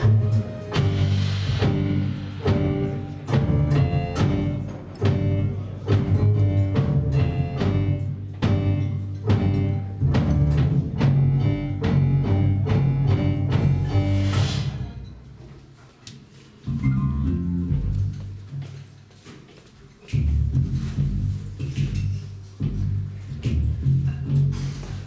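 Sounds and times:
deep bass notes: 0.0 - 15.0, 16.7 - 18.5, 20.2 - 25.0
drum kit and cymbals: 0.0 - 15.4, 20.1 - 25.0
keyboard chords: 0.0 - 15.4, 16.7 - 18.5.

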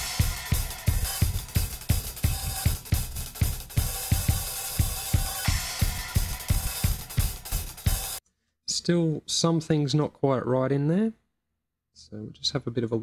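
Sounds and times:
drum kit groove: 0.0 - 8.2.

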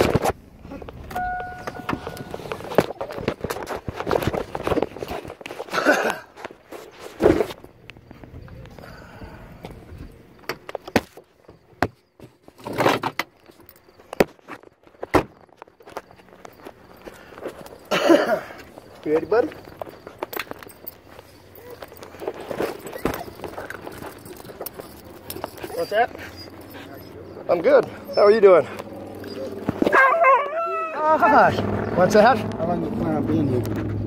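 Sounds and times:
steady beep tone: 1.1 - 2.4
footsteps: 18.5 - 30.5.

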